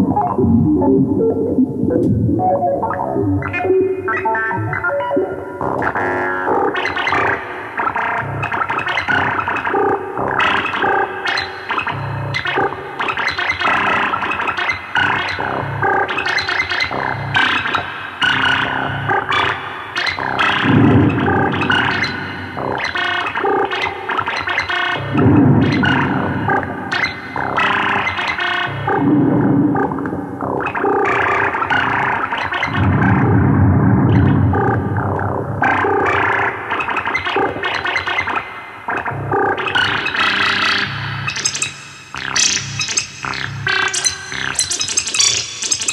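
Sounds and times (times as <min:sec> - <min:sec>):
synthesizer sequence: 0:00.0 - 0:08.6, 0:20.2 - 0:45.9.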